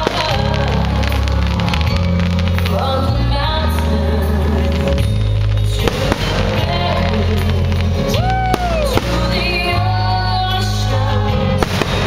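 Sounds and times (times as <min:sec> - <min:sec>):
fireworks bursting: 0:00.0 - 0:12.0
loud music with steady bass: 0:00.0 - 0:12.0.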